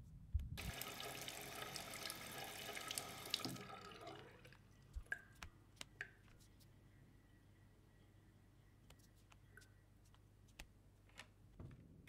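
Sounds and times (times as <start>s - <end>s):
sink tap running: 0.6s - 4.3s.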